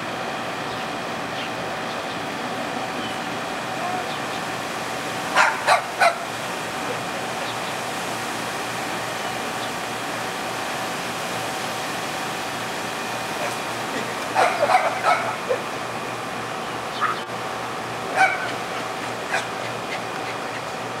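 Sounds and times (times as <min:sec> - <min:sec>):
steady background hum: 0:00.0 - 0:21.0
puppy yapping: 0:05.3 - 0:06.3, 0:14.3 - 0:15.6, 0:17.0 - 0:17.3, 0:18.2 - 0:20.4.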